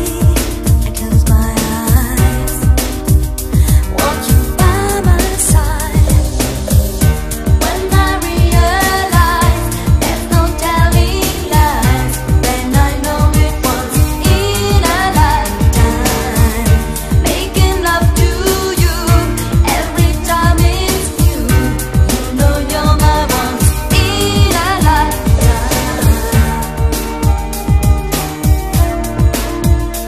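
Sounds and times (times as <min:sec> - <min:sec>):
song with singing over a beat: 0:00.0 - 0:30.0.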